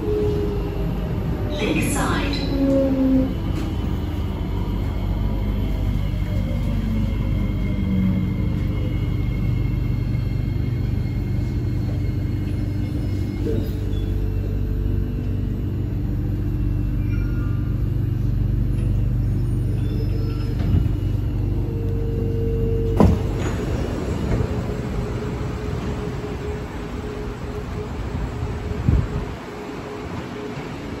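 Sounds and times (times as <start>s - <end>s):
train rumble and hum: 0.0s - 31.0s.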